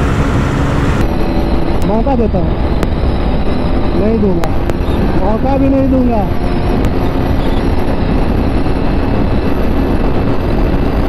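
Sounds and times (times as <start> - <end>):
motorcycle engine at full throttle: 0.0 - 11.0
road noise: 0.0 - 11.0
wind rushing: 0.0 - 11.0.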